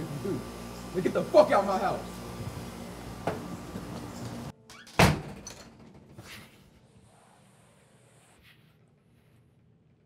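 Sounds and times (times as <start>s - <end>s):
door slamming shut: 4.8s - 6.1s.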